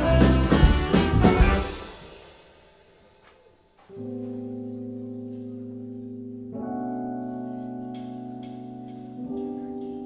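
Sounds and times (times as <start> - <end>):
funk band with drums: 0.0 - 3.0.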